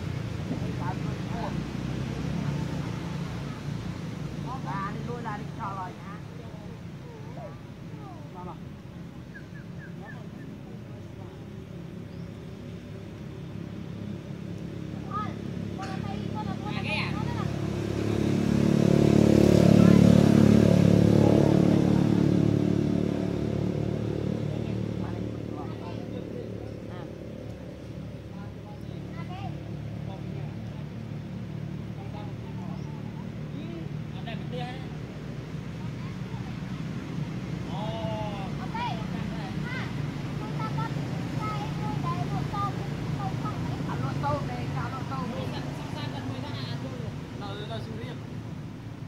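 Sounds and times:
vehicle engine passing by: 0:00.0 - 0:49.0.

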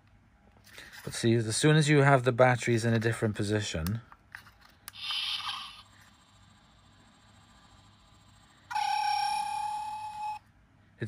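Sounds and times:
steady high electronic tone: 0:05.0 - 0:10.4.

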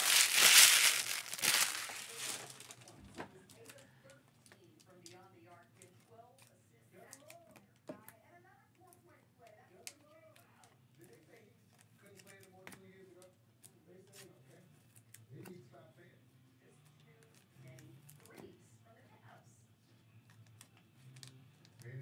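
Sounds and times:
wrapper crinkling and tearing: 0:00.0 - 0:03.0.

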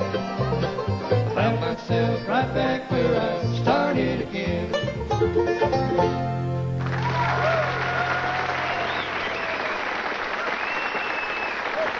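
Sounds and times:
audience applauding: 0:06.8 - 0:11.9.

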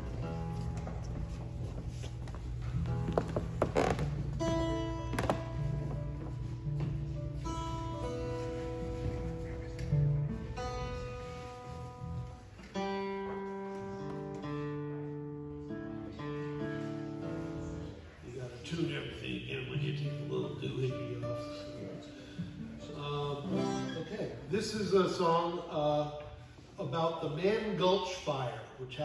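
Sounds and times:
bass guitar notes: 0:00.0 - 0:16.6
acoustic guitars playing: 0:00.0 - 0:28.4.

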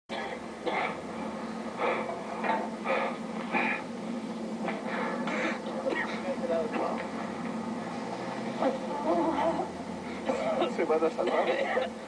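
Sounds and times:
low hum: 0:00.1 - 0:12.0.

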